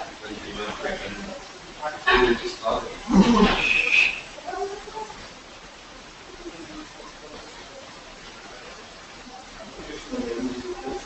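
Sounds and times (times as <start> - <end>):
faint voice sounds: 0.0 - 11.0
loud short vocal sound: 3.1 - 4.4.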